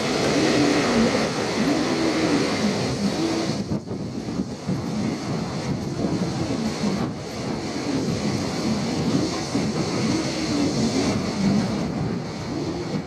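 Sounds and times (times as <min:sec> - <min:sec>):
train wheels running on rails: 0:00.0 - 0:13.0.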